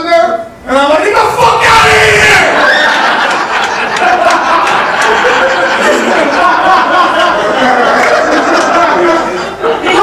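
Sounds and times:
crowd shouts: 0:01.2 - 0:03.4
audience laughing and cheering: 0:01.2 - 0:10.0.

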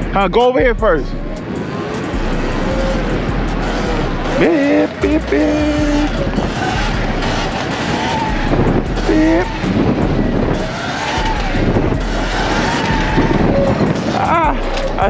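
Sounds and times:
wind rushing over microphone: 0:00.0 - 0:15.0
electric motor whine: 0:01.6 - 0:15.0
person calling out: 0:04.4 - 0:06.1, 0:14.2 - 0:15.0.

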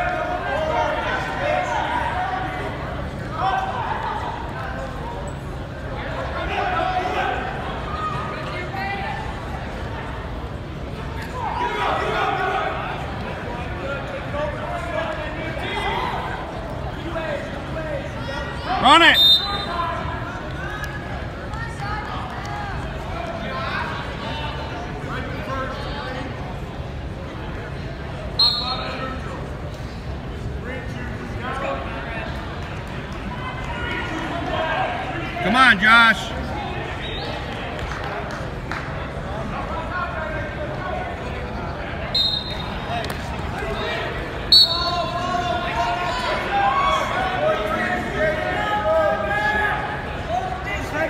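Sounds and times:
crowd voices talking: 0:00.0 - 0:51.0
high-pitched whistle blast: 0:44.5 - 0:45.1.

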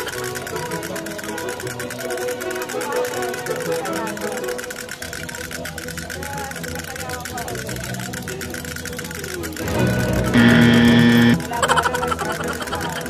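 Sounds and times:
toy drums beating: 0:00.0 - 0:13.0
electronic toy tunes: 0:07.8 - 0:13.0
steady electronic tone: 0:10.2 - 0:11.4.

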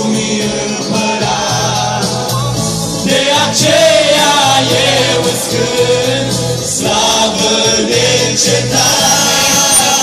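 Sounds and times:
men singing a hymn amplified: 0:00.0 - 0:10.0.

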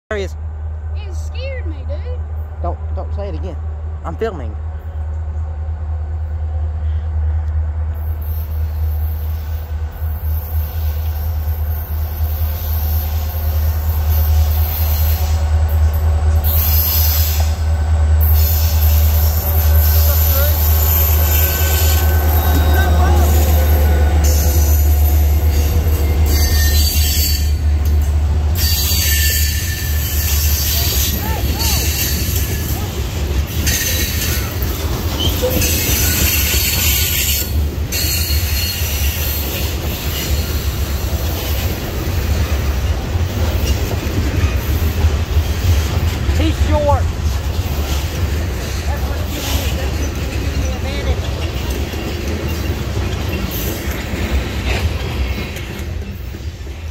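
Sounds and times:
diesel locomotive engine rumble: 0:00.1 - 0:56.9
train wheels on rails: 0:00.3 - 0:56.9.

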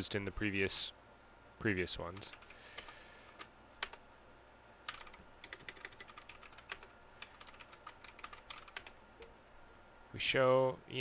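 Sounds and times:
computer keyboard typing: 0:02.2 - 0:04.0, 0:04.8 - 0:09.0.

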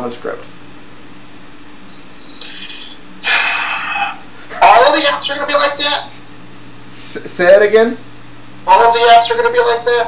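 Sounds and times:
low electrical hum: 0:00.0 - 0:10.0
heavy exhale: 0:02.3 - 0:04.5
person breathing: 0:02.3 - 0:04.5.

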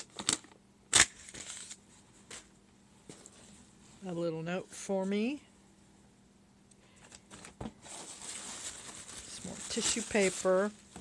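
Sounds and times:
paper crinkling and rustling: 0:01.2 - 0:02.5, 0:07.1 - 0:11.0.

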